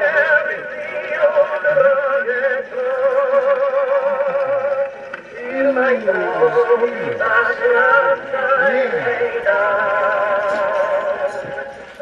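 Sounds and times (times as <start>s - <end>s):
tinny phonograph singing: 0.0s - 12.0s.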